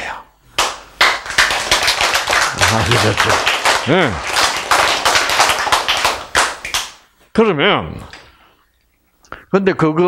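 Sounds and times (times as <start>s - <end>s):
audience clapping: 0.6s - 7.0s.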